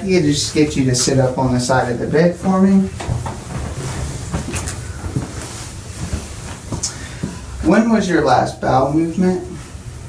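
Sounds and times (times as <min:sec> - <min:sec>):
rustling and creaking of padded table: 0:00.1 - 0:07.5.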